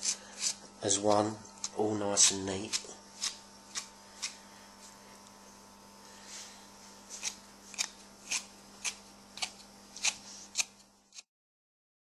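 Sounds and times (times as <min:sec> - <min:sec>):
grooming tool rasping through hair: 0:00.0 - 0:05.0, 0:07.0 - 0:11.3.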